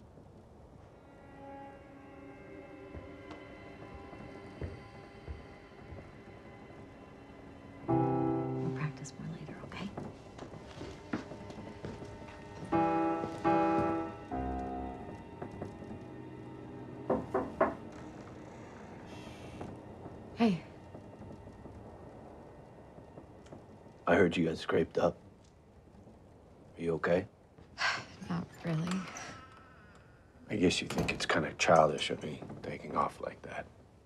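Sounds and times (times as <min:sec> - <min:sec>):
soft sustained background music: 0:00.0 - 0:27.6
piano chords: 0:01.0 - 0:24.6.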